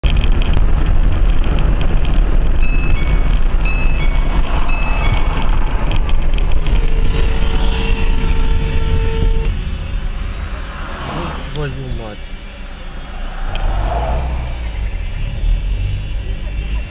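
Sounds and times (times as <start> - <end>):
car road and engine rumble: 0.0 - 16.9
two-note electronic beeps: 2.6 - 5.8
steady pitched tone: 2.6 - 16.2.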